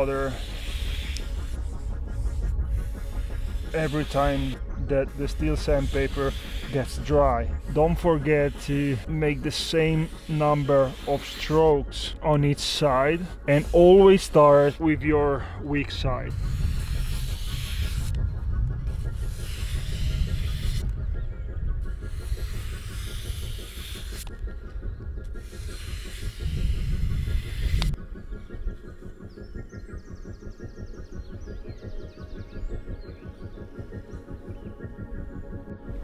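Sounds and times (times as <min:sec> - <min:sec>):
background music: 0:00.0 - 0:36.0
knife scraping on sandpaper: 0:03.0 - 0:04.6, 0:05.2 - 0:14.8, 0:16.3 - 0:18.2, 0:18.9 - 0:20.8, 0:25.4 - 0:28.0.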